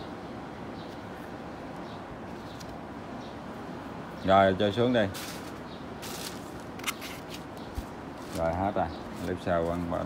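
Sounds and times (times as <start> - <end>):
metal parts scraping on foam: 5.2 - 7.5.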